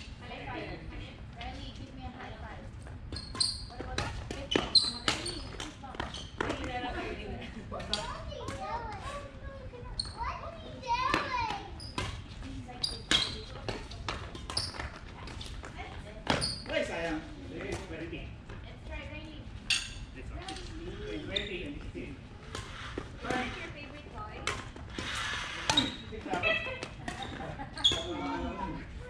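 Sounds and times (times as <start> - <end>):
badminton racket hitting shuttlecock: 11.1 - 14.9, 24.4 - 28.1
players' voices: 20.1 - 29.0.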